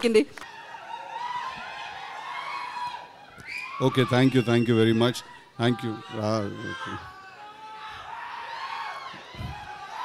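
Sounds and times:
crowd cheering and screaming: 0:00.4 - 0:10.0
man speaking into a microphone: 0:03.8 - 0:07.1.

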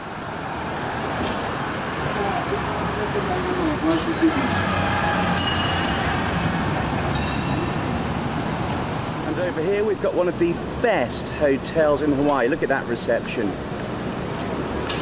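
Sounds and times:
bus driving past: 0:00.0 - 0:11.1
street traffic noise: 0:00.0 - 0:15.0.

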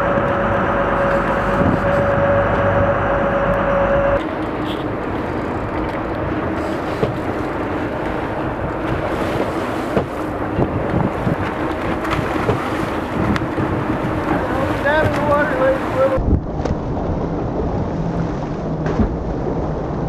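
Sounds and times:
wind buffeting microphone: 0:00.0 - 0:04.2, 0:05.0 - 0:20.0
boat engine hum: 0:00.0 - 0:20.0
seawater rushing along hull: 0:00.0 - 0:20.0.

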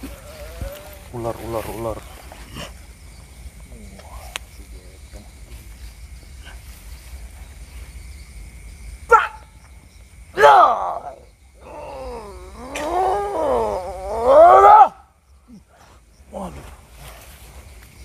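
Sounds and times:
man roaring groans: 0:10.4 - 0:14.7.

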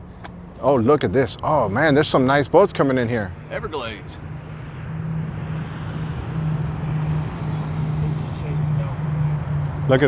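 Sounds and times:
boat engine drone: 0:00.0 - 0:10.0.

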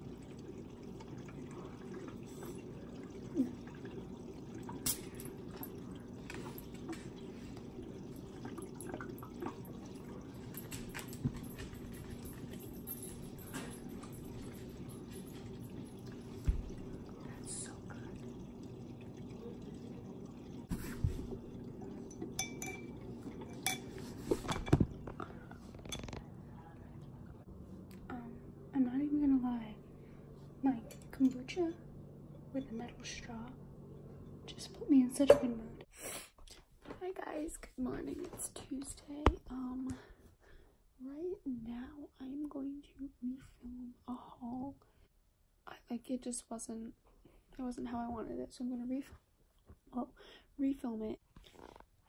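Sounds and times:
steady low hum: 0:00.0 - 0:35.9
glass clinks: 0:22.3 - 0:23.9.

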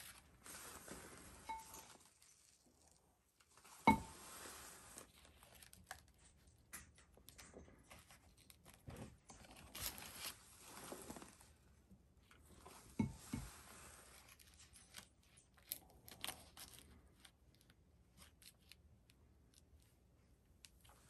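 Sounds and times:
ribbon rustling and crinkling: 0:00.0 - 0:19.9.

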